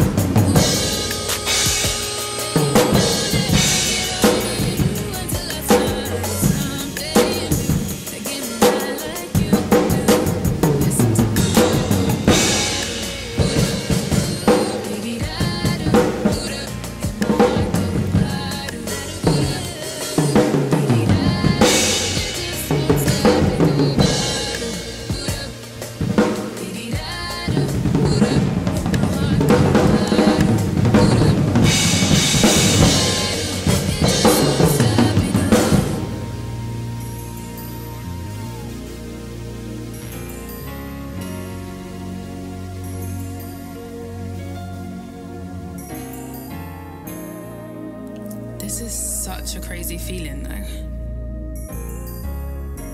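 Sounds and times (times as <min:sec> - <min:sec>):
drum kit playing: 0:00.0 - 0:50.8
recorded r and b song: 0:00.0 - 0:52.9.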